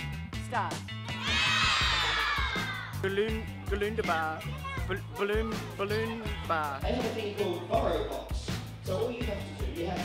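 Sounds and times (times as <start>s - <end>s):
background music: 0.0s - 10.0s
children shouting together: 1.1s - 3.0s, 4.4s - 4.9s.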